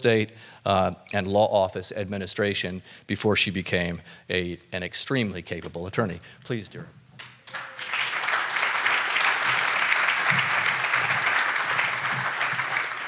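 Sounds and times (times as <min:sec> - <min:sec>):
audience applauding: 0:07.4 - 0:13.0.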